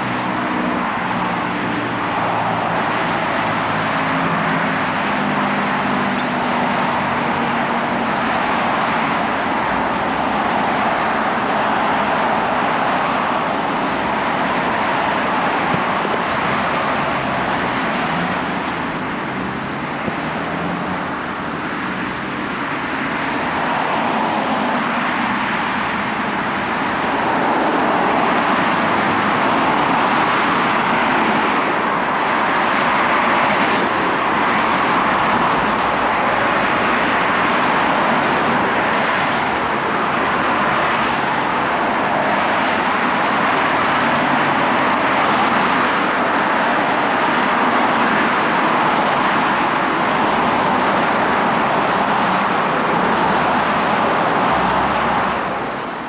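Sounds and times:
cars driving past: 0.0 - 56.0.

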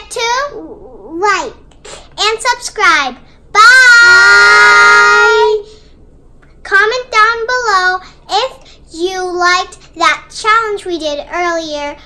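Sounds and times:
child's sing-song phrase: 3.6 - 5.7.

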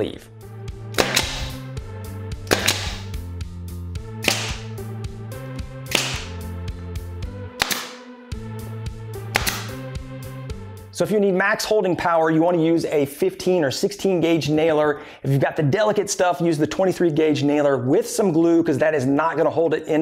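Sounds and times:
background music: 0.0 - 14.7
nail gun shots into wood: 1.0 - 1.6, 2.5 - 3.1, 4.2 - 4.7, 5.9 - 6.4, 7.6 - 8.1, 9.3 - 9.8.

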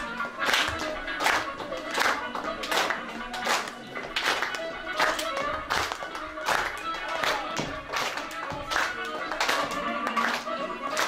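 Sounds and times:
folk dance music: 0.0 - 11.0
hands clapping in time: 0.0 - 11.0.

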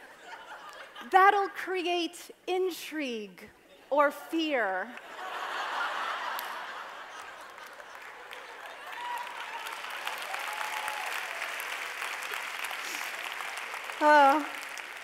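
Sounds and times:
audience clapping: 4.9 - 15.0
audience laughing: 5.0 - 9.6.

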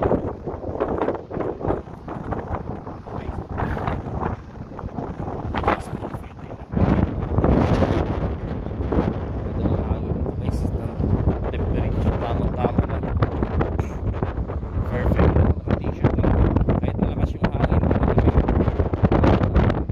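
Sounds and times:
wind buffeting microphone: 0.0 - 19.9.

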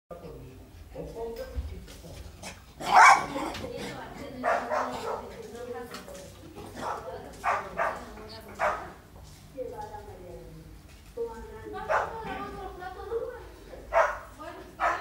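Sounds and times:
small dog barking: 2.8 - 3.5, 4.4 - 5.4, 6.8 - 9.0, 11.9 - 12.3, 13.9 - 15.0.

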